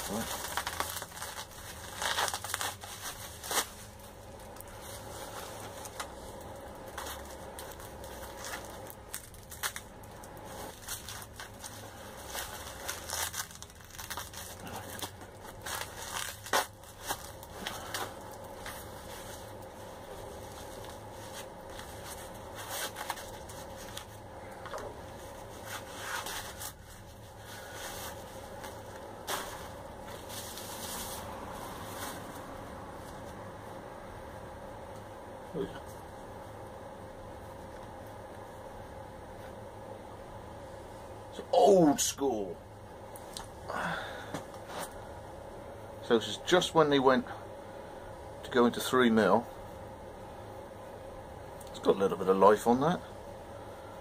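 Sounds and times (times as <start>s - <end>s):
plastic wrap crumpling and tearing: 0.0s - 32.4s.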